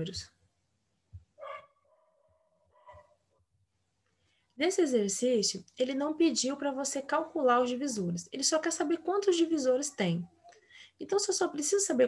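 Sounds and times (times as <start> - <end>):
faint pitched animal call: 1.4 - 3.2.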